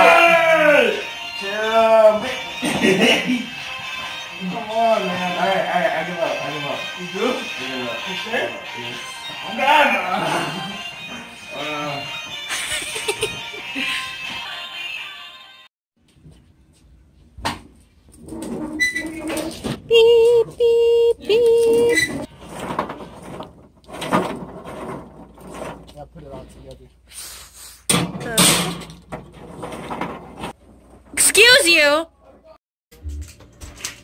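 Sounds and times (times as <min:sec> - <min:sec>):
voices: 0:04.4 - 0:10.8, 0:19.9 - 0:22.2.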